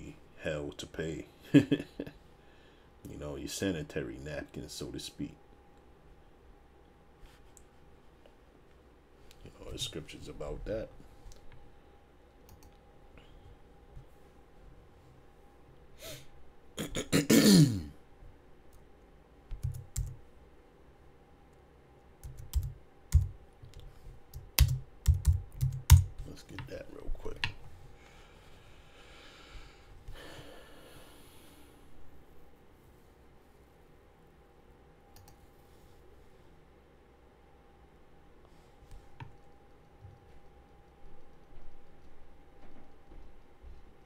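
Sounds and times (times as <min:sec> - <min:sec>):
faint steady hum: 0:00.0 - 0:44.0
computer mouse clicks: 0:12.5 - 0:12.8, 0:35.1 - 0:35.4
man clearing his throat: 0:16.8 - 0:18.0.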